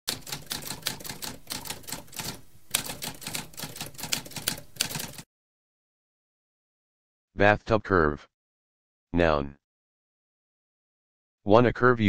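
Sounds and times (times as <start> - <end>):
typewriter keystroke clacks: 0.1 - 5.2.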